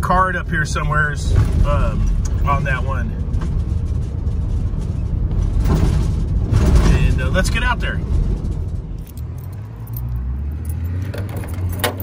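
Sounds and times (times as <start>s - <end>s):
van engine and road rumble: 0.0s - 12.0s.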